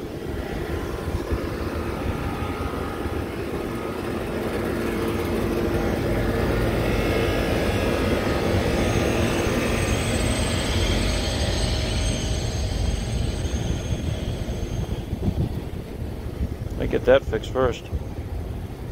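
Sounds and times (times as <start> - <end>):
hvac fan and motor hum: 0.0 - 18.9.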